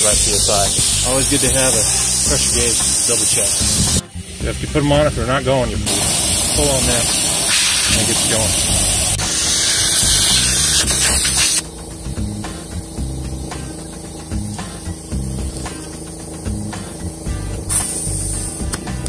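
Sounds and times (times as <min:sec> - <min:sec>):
air hissing from tyre valve: 0:00.0 - 0:19.0.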